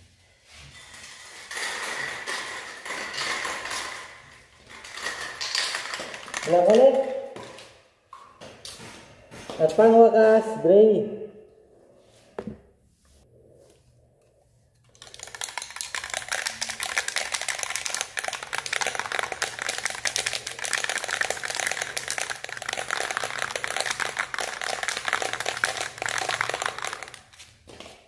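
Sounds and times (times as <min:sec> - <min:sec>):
spray paint can rattling: 0:01.5 - 0:07.1, 0:14.8 - 0:27.5.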